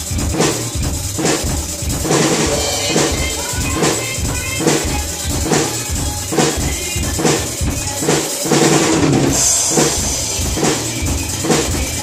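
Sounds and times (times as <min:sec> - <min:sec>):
drum kit rock beat: 0:00.0 - 0:12.0
cymbal crash: 0:02.1 - 0:05.4.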